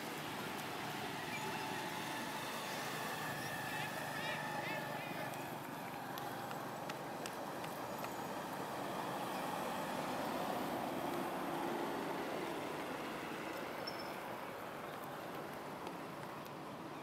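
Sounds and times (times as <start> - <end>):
distant vehicle passing: 0.8 - 16.3.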